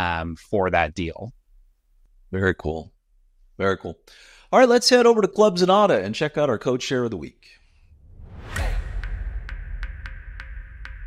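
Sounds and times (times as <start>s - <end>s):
whoosh transition effect: 7.8s - 10.8s
deep bass hit: 7.9s - 11.0s.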